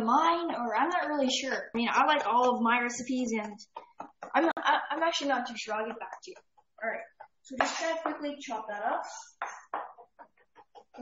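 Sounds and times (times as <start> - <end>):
knife chopping on wooden board: 9.4 - 11.0.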